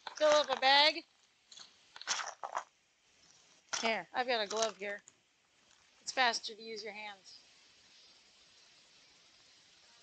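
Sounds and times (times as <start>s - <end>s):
woman speaking: 0.1s - 1.1s, 3.8s - 5.0s, 6.1s - 7.4s.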